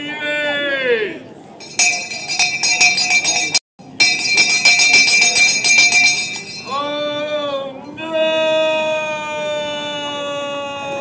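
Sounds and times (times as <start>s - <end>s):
handbell ringing rapidly: 1.6s - 6.9s.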